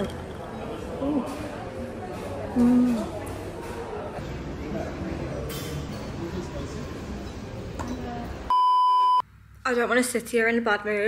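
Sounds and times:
high electronic beep: 8.5 - 9.2.

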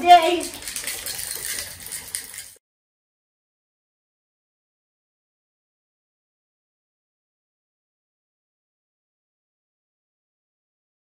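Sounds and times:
objects rattling in a jar: 0.0 - 2.6
water sloshing in a jar: 0.0 - 2.6.

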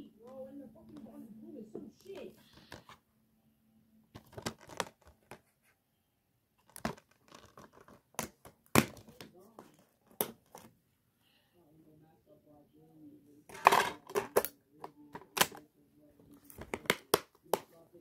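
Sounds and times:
plastic case crinkling: 4.1 - 5.4, 6.6 - 10.7
plastic case clicks and snaps: 6.6 - 9.2, 13.5 - 14.6, 15.2 - 15.6, 16.5 - 17.7.

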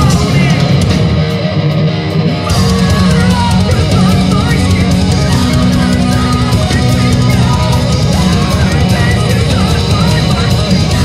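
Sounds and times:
drums and cymbals: 0.0 - 11.0
metal band playing live: 0.0 - 11.0.

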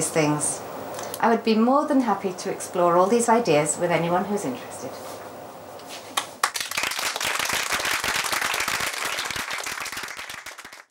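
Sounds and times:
audience applauding: 6.2 - 10.9.

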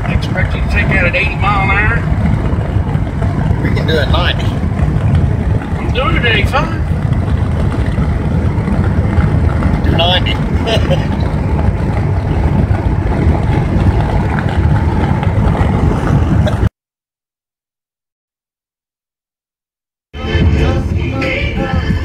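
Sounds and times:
road and engine rumble in car: 0.0 - 16.8, 20.2 - 22.0.

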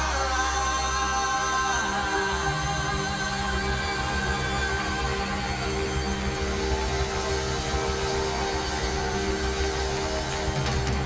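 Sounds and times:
live worship band music: 0.0 - 11.0.

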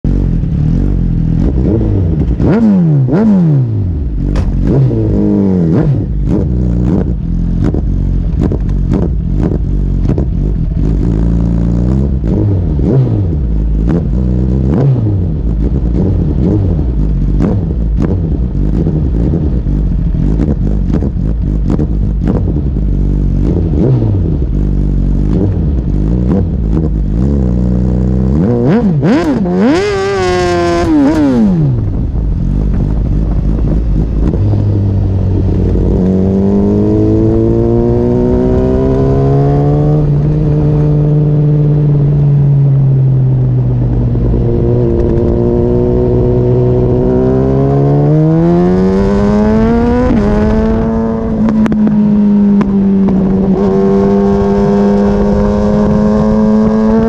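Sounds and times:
motorcycle engine revving: 0.0 - 57.0
wind buffeting camera: 0.3 - 57.0.

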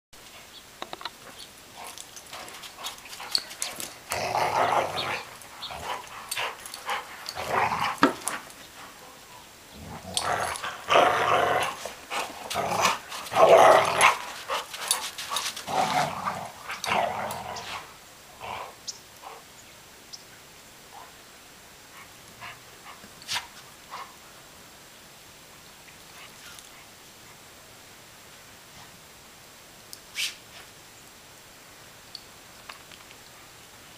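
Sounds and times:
dogs growling in play: 1.7 - 9.0, 9.7 - 19.4.

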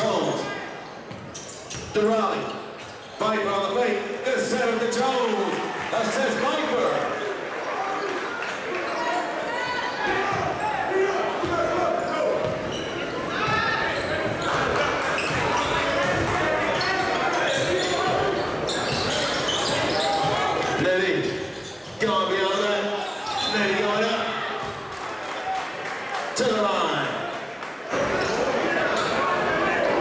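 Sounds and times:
sneakers squeaking and knocks: 0.2 - 3.2, 11.4 - 23.8
crowd voices hubbub: 3.8 - 30.0.

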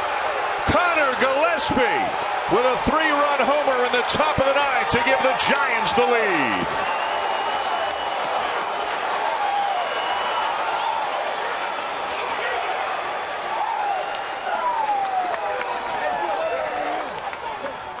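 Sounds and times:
stadium crowd din: 0.0 - 18.0.

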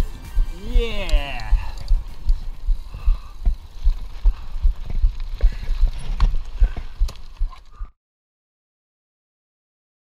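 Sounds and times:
bike tyres on gravel: 0.0 - 7.8
bike rattling clicks: 1.0 - 7.8
low thumps from bumps: 1.5 - 7.5.

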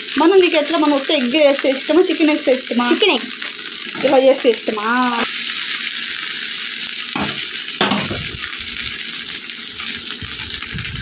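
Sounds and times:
rice sizzling in a pan: 0.0 - 11.0.

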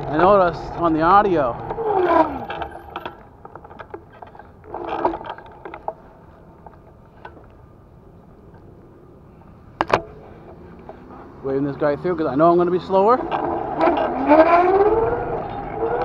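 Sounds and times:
vehicle rattle: 0.0 - 7.4.

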